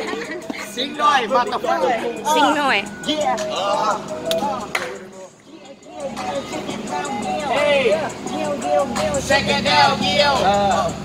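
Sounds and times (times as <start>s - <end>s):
young men's voices: 0.0s - 11.0s.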